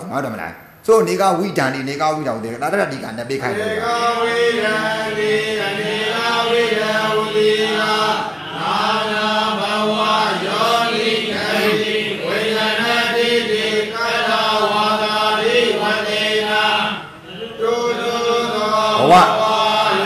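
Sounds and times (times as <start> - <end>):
person chanting scripture: 2.2 - 20.0.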